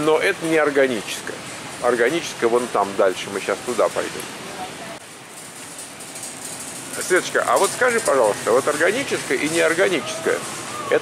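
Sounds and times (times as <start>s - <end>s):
shopping cart being pushed: 0.0s - 4.3s, 5.2s - 11.0s
supermarket background noise: 0.0s - 11.0s.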